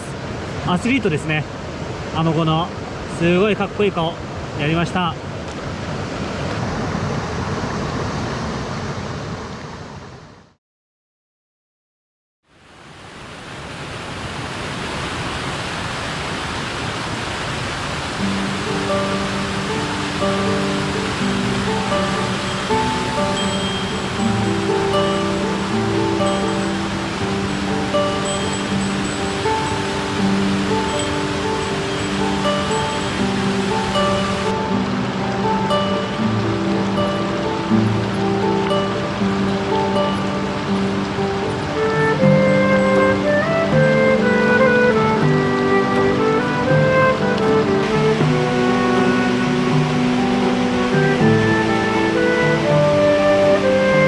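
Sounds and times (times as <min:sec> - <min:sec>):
stream rushing over rocks: 0:00.0 - 0:10.4, 0:12.5 - 0:54.0
background music with held notes: 0:18.2 - 0:54.0.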